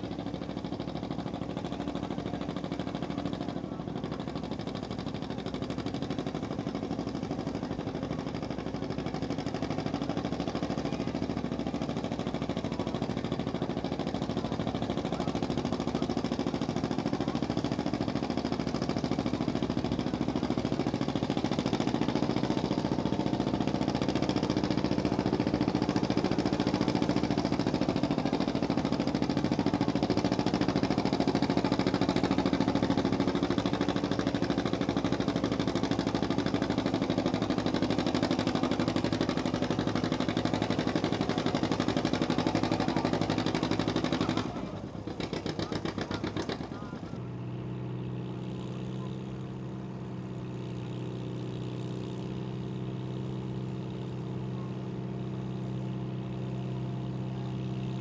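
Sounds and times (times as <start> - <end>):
tractor engine pulling under load: 0.0 - 58.0.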